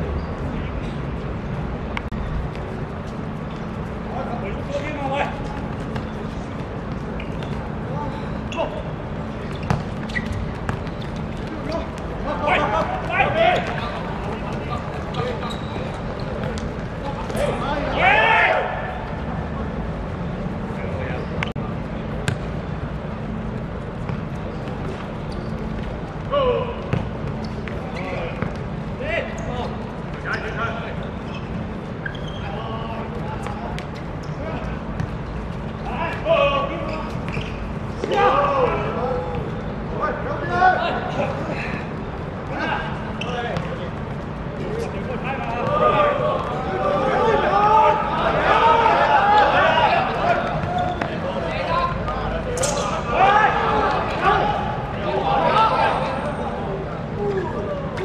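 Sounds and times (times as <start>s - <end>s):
steady low hum: 0.0s - 48.5s
players calling out: 4.1s - 19.2s, 40.4s - 58.0s
ball kicked and bouncing: 9.5s - 12.1s.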